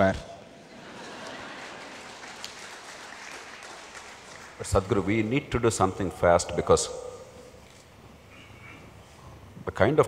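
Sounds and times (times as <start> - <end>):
audience applause: 0.9 - 4.9.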